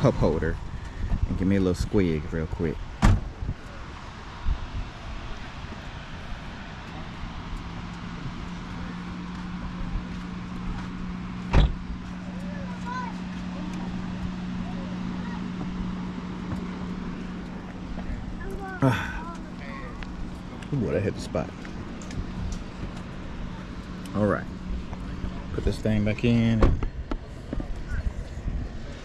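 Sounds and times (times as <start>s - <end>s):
steady engine hum: 0.0s - 29.0s.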